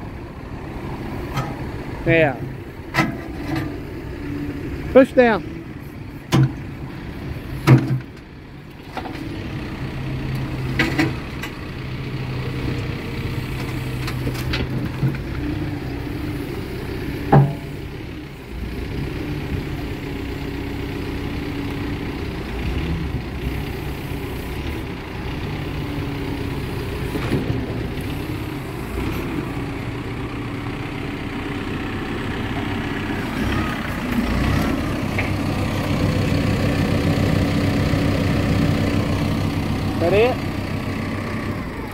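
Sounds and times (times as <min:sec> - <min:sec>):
diesel engine running: 0:00.0 - 0:41.9.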